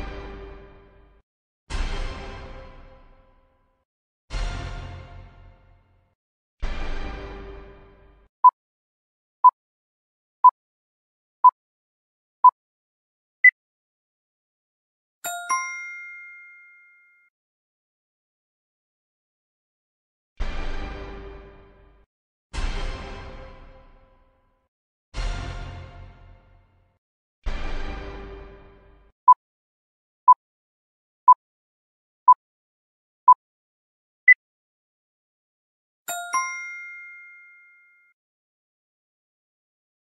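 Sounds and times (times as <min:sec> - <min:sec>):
bright chime ding: 0:15.3 - 0:17.3, 0:36.1 - 0:38.1.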